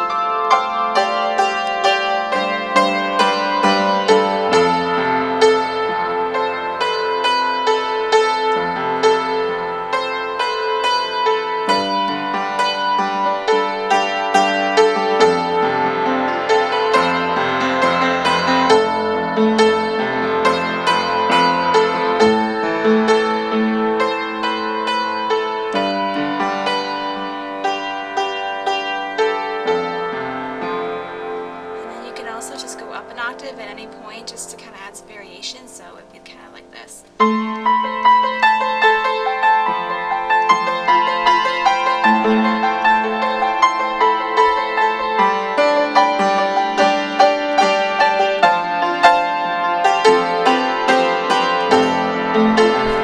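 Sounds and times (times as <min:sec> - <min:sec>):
upright piano chords and melody: 0:00.0 - 0:53.0.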